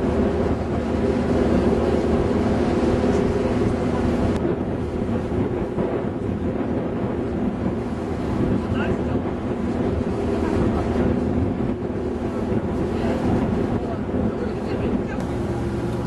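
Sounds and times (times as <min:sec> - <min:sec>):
boat engine droning: 0:00.0 - 0:16.0
wind buffeting microphone: 0:00.0 - 0:16.0.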